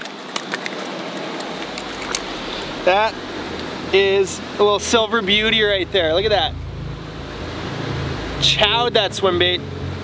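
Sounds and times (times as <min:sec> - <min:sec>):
river water rushing: 0:00.7 - 0:10.0
low rumble: 0:01.4 - 0:10.0.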